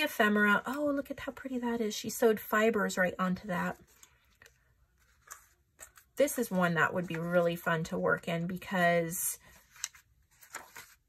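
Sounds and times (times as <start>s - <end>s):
paper pages turning: 3.7s - 7.4s, 9.5s - 11.0s.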